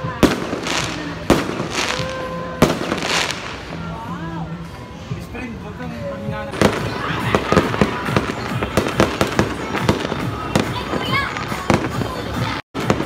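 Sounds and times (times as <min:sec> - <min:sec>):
fireworks and firecrackers bangs: 0:00.0 - 0:04.1, 0:06.5 - 0:13.0.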